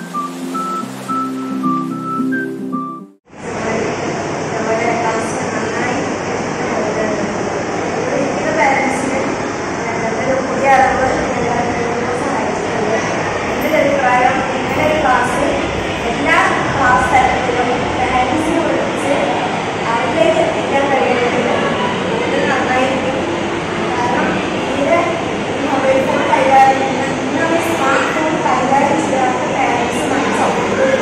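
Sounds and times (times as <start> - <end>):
loud background noise: 0.0 - 2.6, 3.3 - 31.0
steady background noise: 0.0 - 2.7, 3.3 - 31.0
woman talking: 3.4 - 7.4, 8.0 - 23.3, 24.0 - 31.0
woman speaking: 3.5 - 7.4, 8.0 - 23.3, 24.0 - 31.0.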